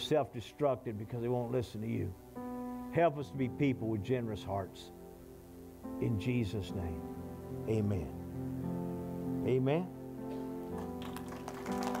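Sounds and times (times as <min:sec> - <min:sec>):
soft sustained chords: 0:00.0 - 0:12.0.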